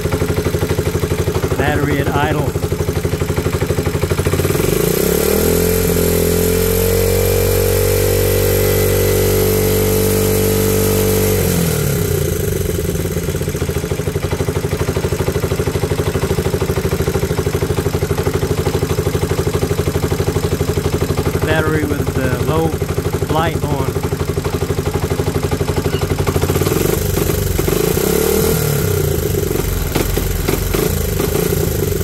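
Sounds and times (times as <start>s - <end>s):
motorcycle engine idling and revving: 0.0s - 32.0s.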